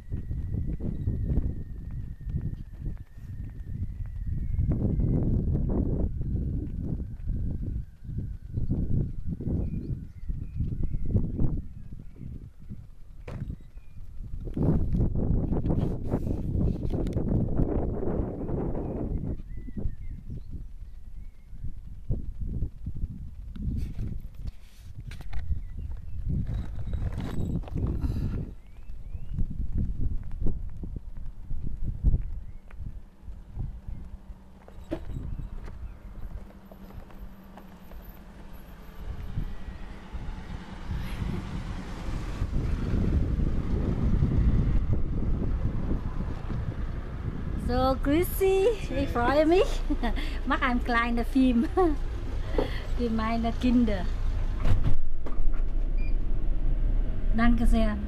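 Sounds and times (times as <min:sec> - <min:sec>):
bus engine rumbling: 0:00.0 - 0:58.0
wind buffeting microphone: 0:00.0 - 0:58.0
footsteps: 0:29.7 - 0:38.8.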